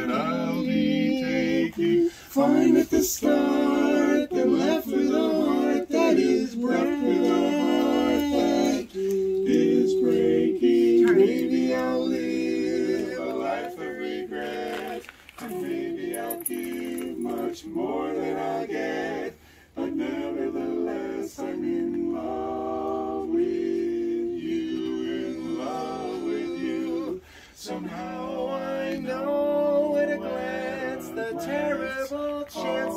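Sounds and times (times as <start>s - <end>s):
men singing in close harmony: 0.0s - 32.9s.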